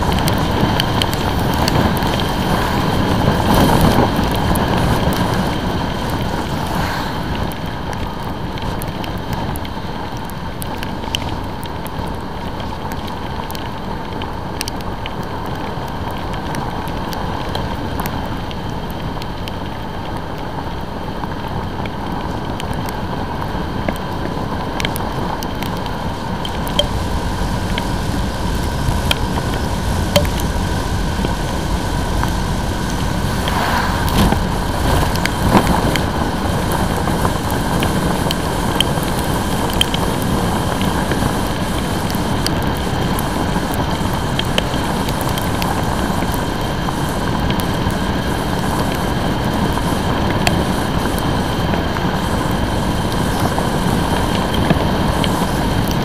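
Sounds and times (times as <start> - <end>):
wind buffeting microphone: 0.0 - 14.6, 15.2 - 56.0
motorcycle road noise: 0.0 - 56.0
raindrops ticking on camera: 0.0 - 56.0.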